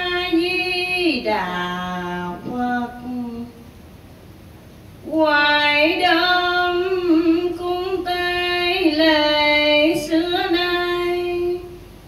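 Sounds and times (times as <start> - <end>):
woman chanting a slow melody: 0.0 - 3.6, 5.0 - 11.8.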